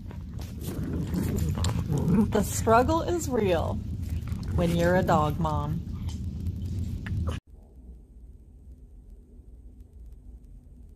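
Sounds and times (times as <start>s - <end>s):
low rumble of movement: 0.0s - 10.9s.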